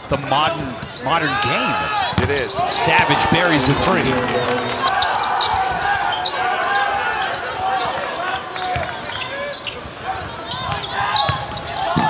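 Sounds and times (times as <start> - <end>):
players' voices: 0.3 - 6.7
arena crowd murmur: 2.7 - 6.1.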